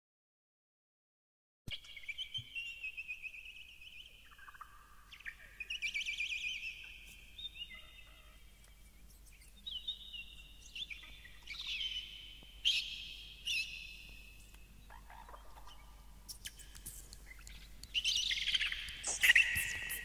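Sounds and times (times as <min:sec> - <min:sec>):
birds chirping and singing: 0:01.7 - 0:20.0.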